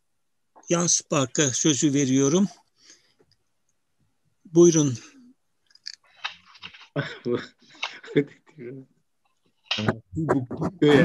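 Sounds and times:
faint broken voice: 7.0 - 8.9, 9.7 - 11.0.

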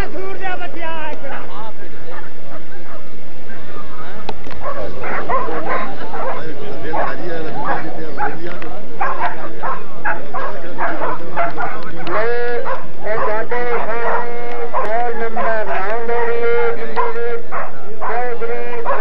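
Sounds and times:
dogs yelping and whining: 4.6 - 6.4.

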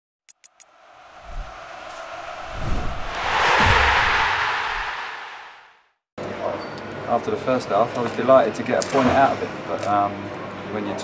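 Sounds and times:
rush of noise: 0.6 - 5.8
low thumps: 1.0 - 5.6.

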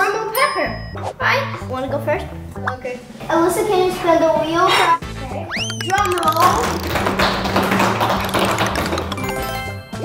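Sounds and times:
background music with low notes: 0.0 - 10.0
rapid rattle of taps: 5.9 - 9.4.

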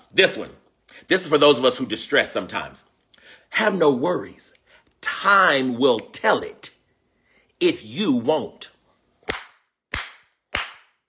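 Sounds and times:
man's hands slapping: 9.2 - 11.0.

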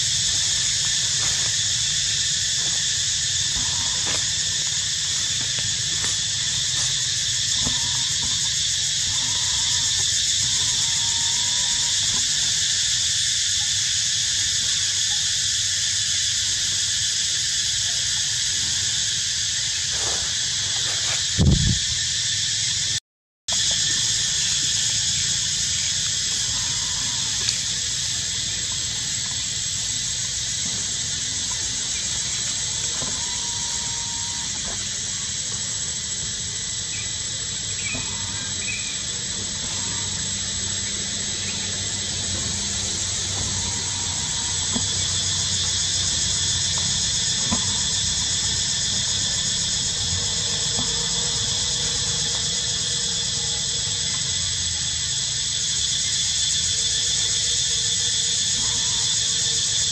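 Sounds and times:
cicada chorus drone: 0.0 - 59.9.

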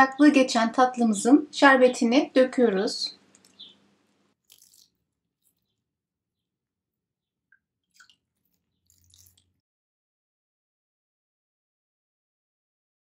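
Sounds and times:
syrup splashing and dripping: 4.4 - 6.0, 7.2 - 9.6.

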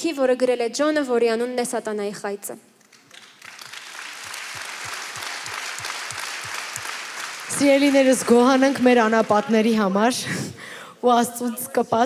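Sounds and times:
audience applauding: 2.9 - 9.8.

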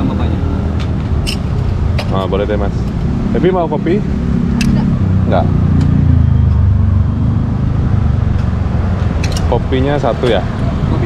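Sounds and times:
engine low hum: 0.0 - 11.0.

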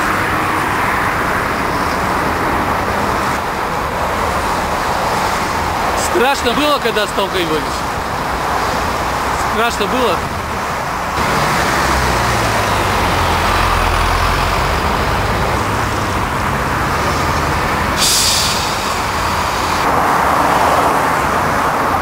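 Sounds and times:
highway traffic passing: 0.0 - 22.0
hissy traffic rush: 0.0 - 22.0
low engine drone: 10.2 - 20.2.

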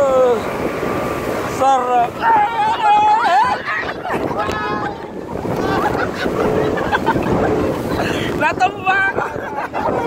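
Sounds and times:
water rushing past: 0.0 - 10.0
wind buffeting microphone: 0.0 - 10.0.

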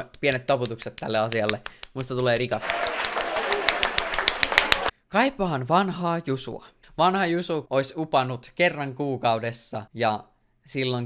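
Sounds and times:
crowd applause: 2.6 - 4.9.

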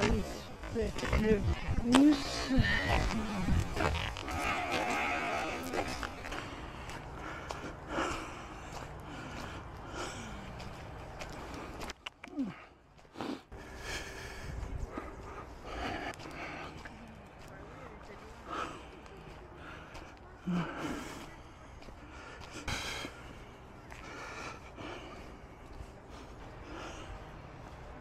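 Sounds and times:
footsteps on gravel: 0.0 - 28.0.

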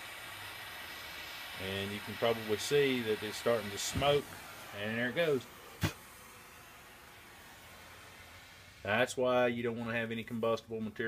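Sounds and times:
faint steady hiss: 0.0 - 11.0
man speaking: 1.6 - 5.5, 8.8 - 11.0.

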